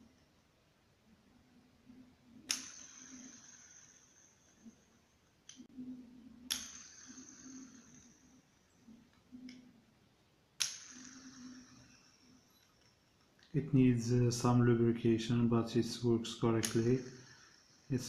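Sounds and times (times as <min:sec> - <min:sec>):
fidget spinner whirring: 0:01.9 - 0:09.8, 0:10.6 - 0:13.7, 0:16.3 - 0:18.0
fidget spinner flick click: 0:02.4 - 0:03.9, 0:06.5 - 0:08.1, 0:10.6 - 0:12.8, 0:16.6 - 0:17.5.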